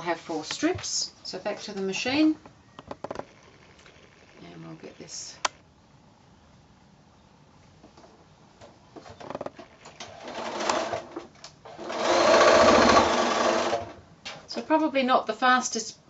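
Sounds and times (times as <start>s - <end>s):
sewing machine stitching: 10.0s - 14.0s.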